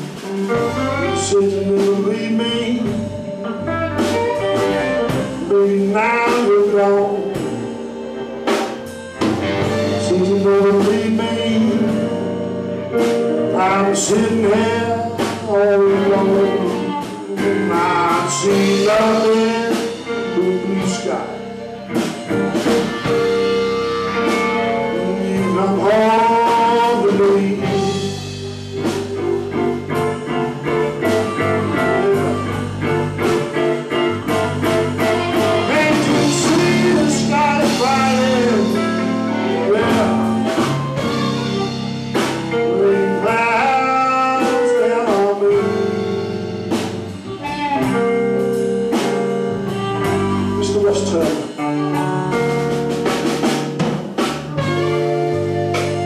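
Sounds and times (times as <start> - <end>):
blues band playing live: 0.0 - 56.0
amplified harmonica bent notes: 6.8 - 56.0.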